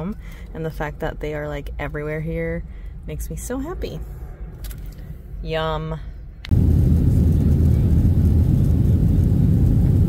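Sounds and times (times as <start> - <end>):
jet airliner cabin rumble: 2.6 - 10.0.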